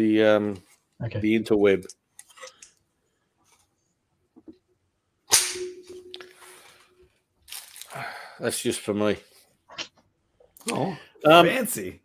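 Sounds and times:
sharp snap: 5.3 - 5.8
faint steady tone: 5.5 - 7.2.

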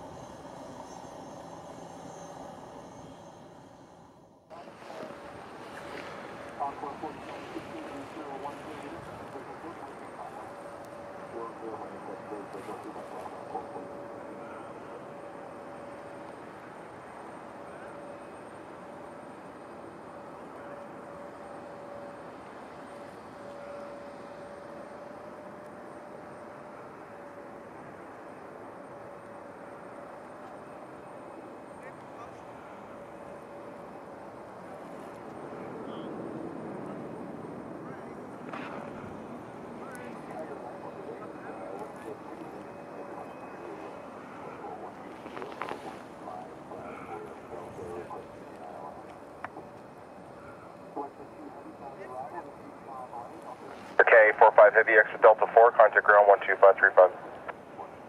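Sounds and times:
high whining tone: 0.0 - 4.5
jet engines rushing hum: 0.0 - 58.0.

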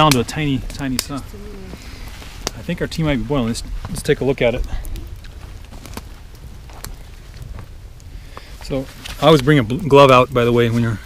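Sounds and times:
campfire crackling: 0.0 - 11.0
fire pops and snaps: 0.0 - 11.0.

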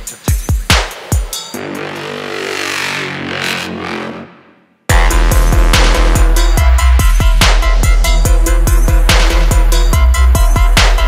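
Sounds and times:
low synth bass note: 1.6 - 10.8.

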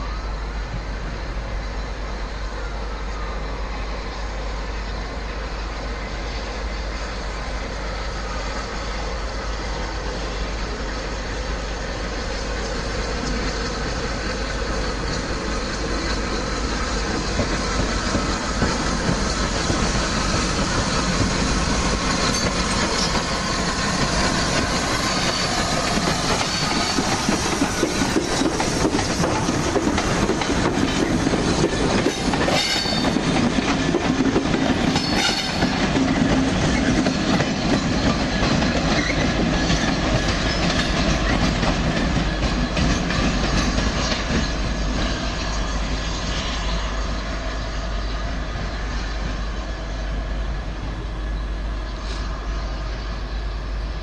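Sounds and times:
high wheel squeals: 4.9 - 33.3, 34.8 - 35.9, 36.5 - 50.2
train wheels clicking over rail joints: 6.8 - 51.4.

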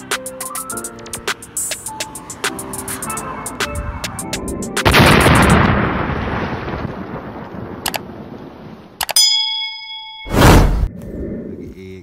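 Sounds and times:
explosion sound effect: 4.8 - 7.4, 10.3 - 10.9
clicks: 7.8 - 8.0, 9.0 - 9.2
ringing ding: 9.2 - 10.4.

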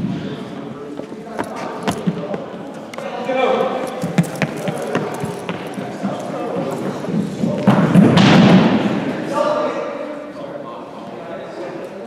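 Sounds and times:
footsteps running on hall floor: 3.9 - 8.6.

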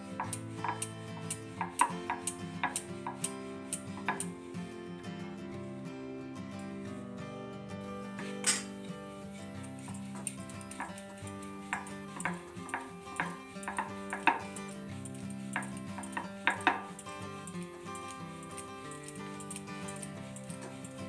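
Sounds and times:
background music: 0.0 - 20.9
rolling pin knocking on board: 11.6 - 14.6.

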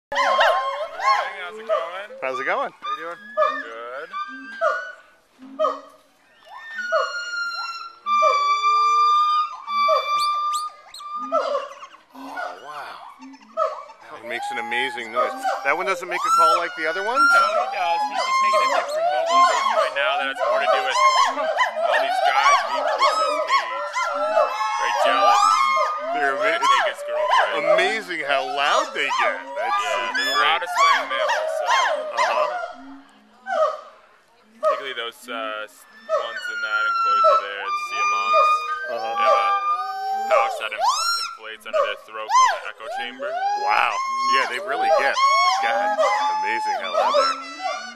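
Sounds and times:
gibbons calling: 0.1 - 47.9.

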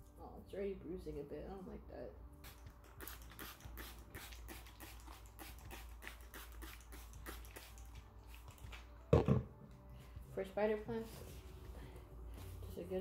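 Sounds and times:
spray bottle squirts: 2.4 - 8.8.

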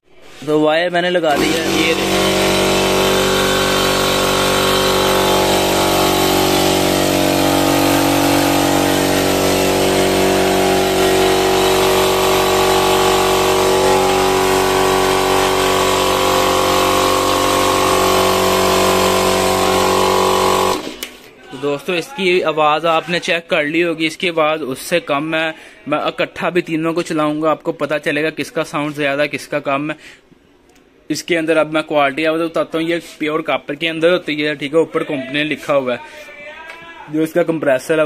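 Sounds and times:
air compressor humming: 1.2 - 21.3.

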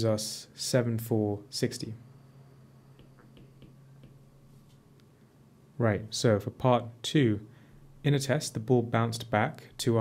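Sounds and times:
low steady hum: 0.0 - 10.0
stylus tapping on tablet: 2.9 - 4.4.

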